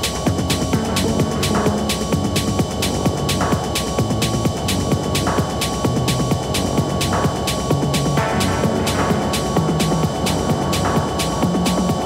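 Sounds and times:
synth sweep: 0.0 - 12.0
techno beat with hi-hats: 0.0 - 12.0
throbbing bassline: 0.0 - 12.0.

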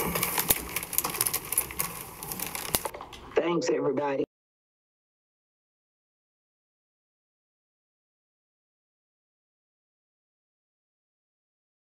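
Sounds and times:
rustling handling noise: 0.0 - 3.3.

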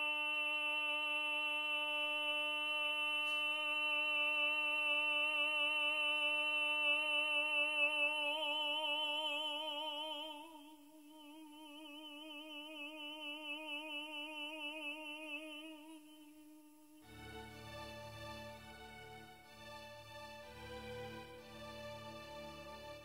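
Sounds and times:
operatic tenor singing long note: 0.0 - 23.0.

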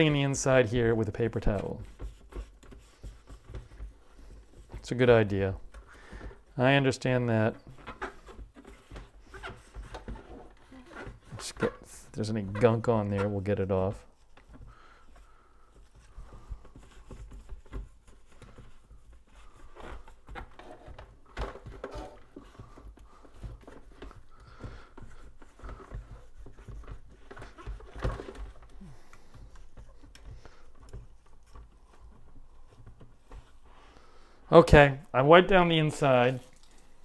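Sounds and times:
paper towel rubbing plastic: 0.0 - 37.0.

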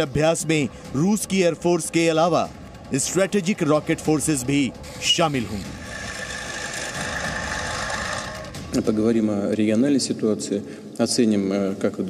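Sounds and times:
high whine: 1.0 - 9.0.

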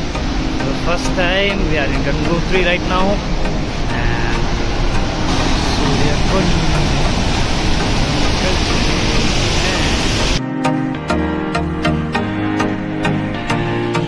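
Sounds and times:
water rushing over rocks: 0.0 - 10.4
background music: 0.0 - 14.0.

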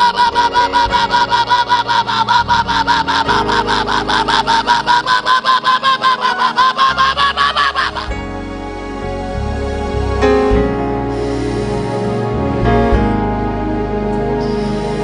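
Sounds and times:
high-pitched ululation: 0.0 - 8.2.

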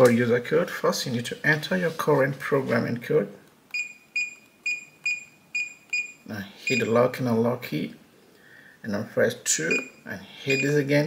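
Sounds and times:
keypad beeps: 3.7 - 6.9, 9.7 - 10.8.

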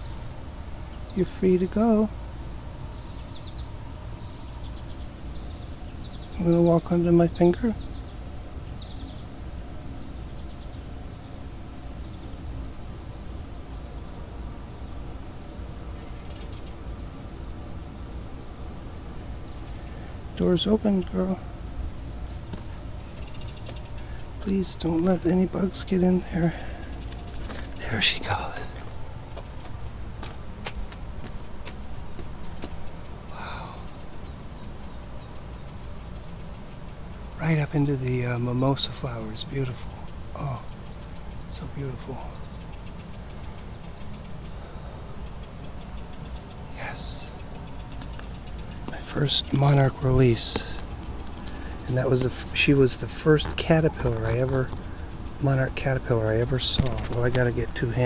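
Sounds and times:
insect high even trill: 0.0 - 58.0
insect rapidly pulsing chirp: 0.0 - 58.0.

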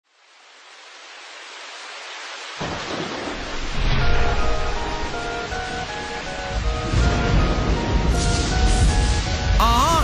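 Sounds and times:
rain hiss: 0.0 - 10.0
deep rumble of thunder: 2.6 - 9.6.

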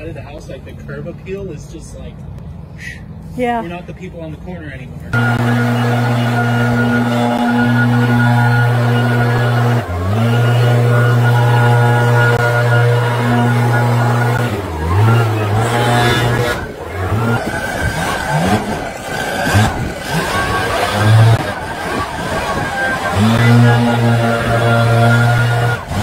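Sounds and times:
leaf blower revving: 5.2 - 26.0.

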